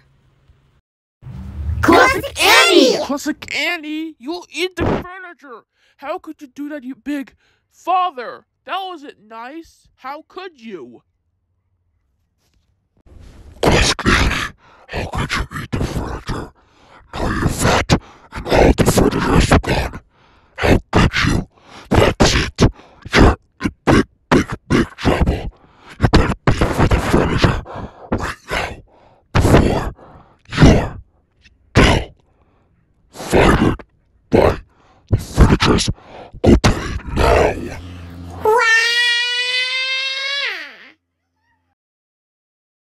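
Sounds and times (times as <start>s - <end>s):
distorted grunting: 13.6s - 20.0s, 20.6s - 31.0s, 31.7s - 32.2s, 33.2s - 38.8s
cartoon-style descending wail: 38.4s - 40.8s.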